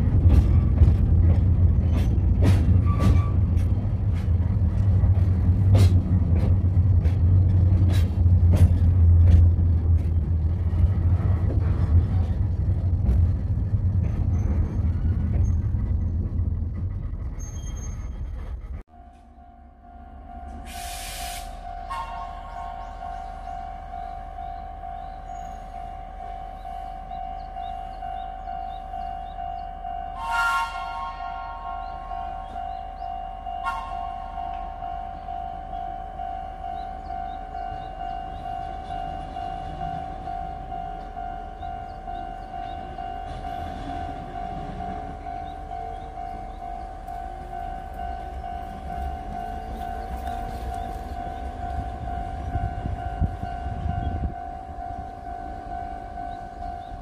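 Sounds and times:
high-pitched train hum: 0.0 - 57.0.

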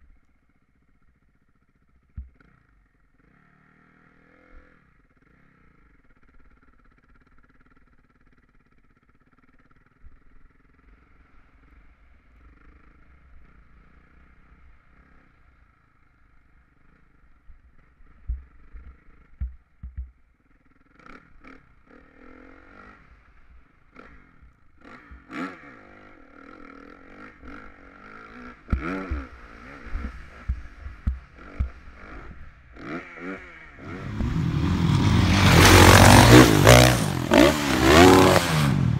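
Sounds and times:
muffled dirt bike engine: 0.0 - 38.9
dirt bike engine revving: 20.8 - 38.9.

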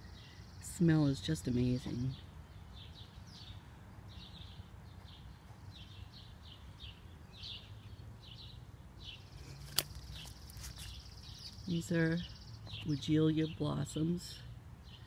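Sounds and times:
small bird chirping: 0.0 - 14.1.

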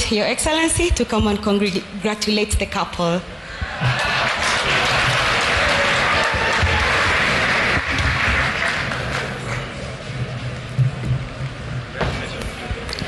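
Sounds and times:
audience applauding: 3.6 - 9.8.

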